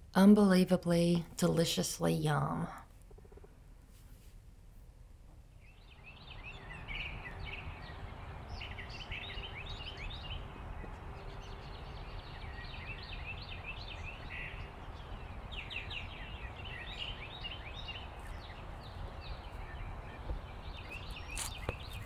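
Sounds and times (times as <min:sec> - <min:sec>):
low outdoor rumble: 0:00.0 - 0:22.0
birds chirping and trilling: 0:05.5 - 0:22.0.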